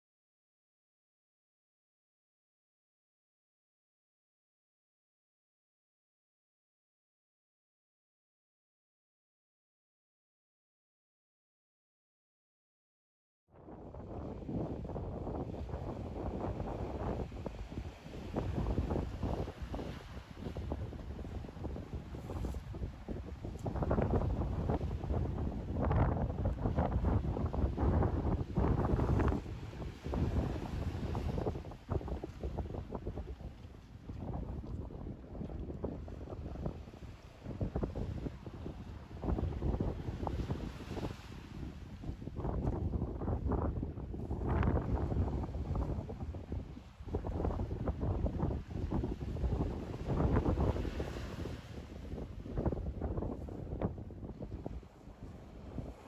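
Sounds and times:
wind buffeting microphone: 13.6s - 56.0s
waves washing onto shore: 14.2s - 42.9s, 44.2s - 53.8s, 54.4s - 56.0s.

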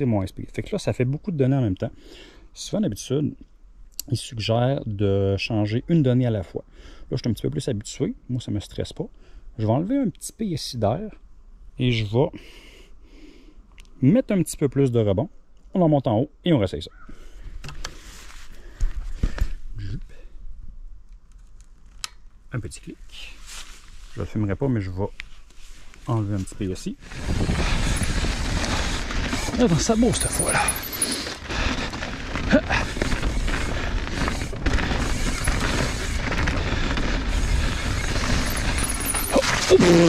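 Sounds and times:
rustling: 17.8s - 19.6s, 23.0s - 40.0s
bike tyre noise: 25.6s - 40.0s
wind rumble on microphone: 27.0s - 30.0s.

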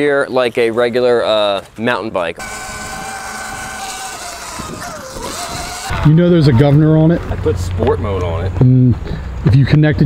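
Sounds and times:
electric motor whining: 2.4s - 6.6s.

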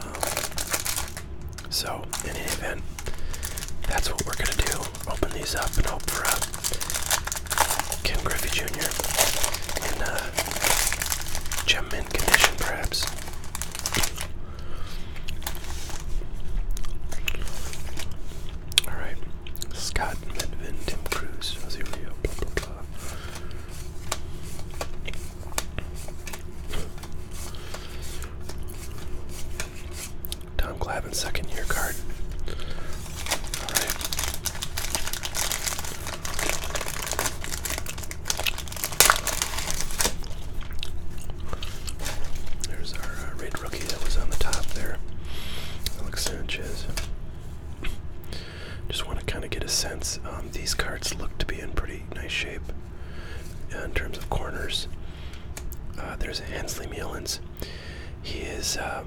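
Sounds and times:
plastic wrapping crinkling and tearing: 0.0s - 14.4s, 15.2s - 30.4s, 31.1s - 45.1s, 45.8s - 47.1s
baseball cards flipping and shuffling: 2.1s - 14.3s, 20.3s - 30.2s.

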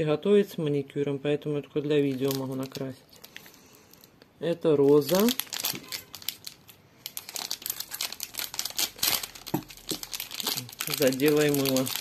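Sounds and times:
plastic film crinkling: 2.0s - 4.2s, 4.8s - 12.0s.

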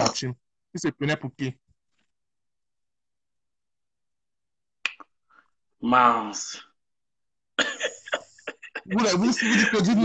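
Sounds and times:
person speaking: 8.1s - 10.0s.

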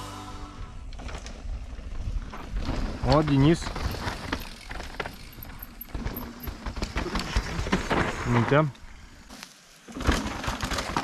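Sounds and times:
bikes rattling: 0.0s - 11.0s.

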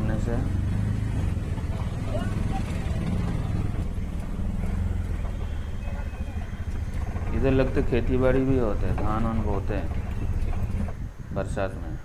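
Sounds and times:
auto-rickshaw engine droning: 0.0s - 12.0s.

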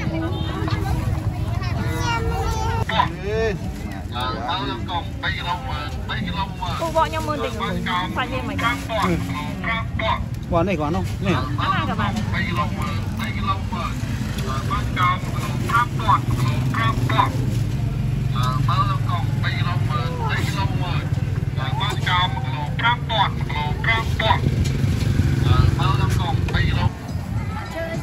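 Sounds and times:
people talking: 0.0s - 17.5s, 18.3s - 24.5s, 25.3s - 28.0s
vehicle engine rumbling: 0.0s - 28.0s.

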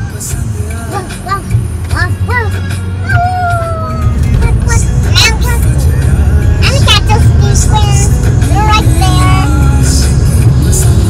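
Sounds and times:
music: 0.0s - 11.0s
road and engine rumble: 0.0s - 11.0s.

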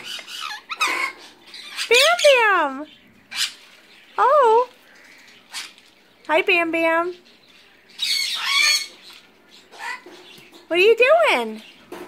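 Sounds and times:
parrot squawking: 0.0s - 2.7s, 3.3s - 3.6s, 5.4s - 5.8s, 8.0s - 9.1s, 9.7s - 10.1s.

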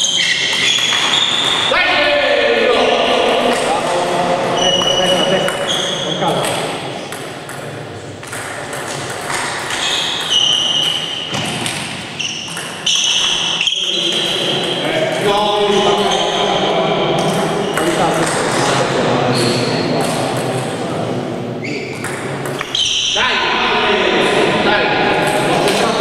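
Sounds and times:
shoes squeaking on floor: 0.0s - 1.8s, 4.5s - 6.8s, 8.9s - 14.9s, 15.5s - 16.7s, 19.3s - 20.1s, 21.6s - 23.2s.

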